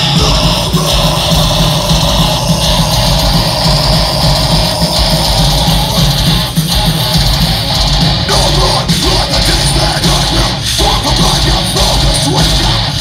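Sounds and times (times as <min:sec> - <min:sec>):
bass guitar: 0:00.0 - 0:13.0
distorted electric guitars: 0:00.0 - 0:13.0
drums: 0:00.0 - 0:13.0.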